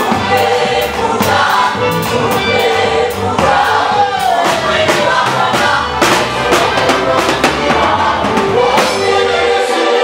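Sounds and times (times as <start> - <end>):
live band dance beat: 0.0 - 9.5
bass guitar: 0.0 - 9.6
drum kit: 0.0 - 10.0
keyboard: 0.0 - 10.0
voices singing: 0.0 - 10.0.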